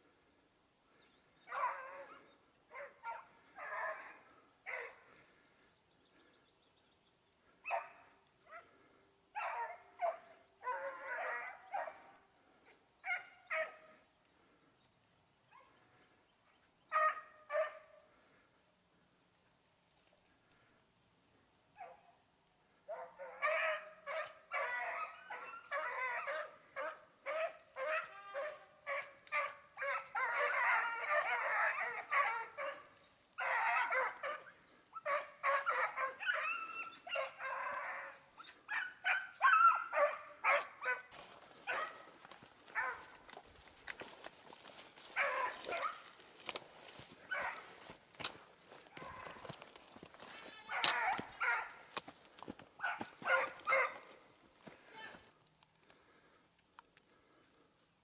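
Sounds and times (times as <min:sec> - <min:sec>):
hounds barking: 0:01.0 - 0:05.4, 0:07.4 - 0:14.1, 0:16.9 - 0:18.5, 0:21.7 - 0:22.2, 0:22.8 - 0:55.2.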